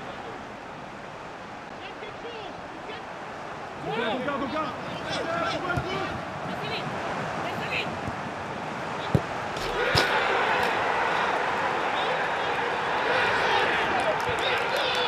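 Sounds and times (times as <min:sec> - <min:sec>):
players shouting in celebration: 0:04.0 - 0:08.0, 0:09.0 - 0:15.0
football kicked: 0:09.0 - 0:10.3.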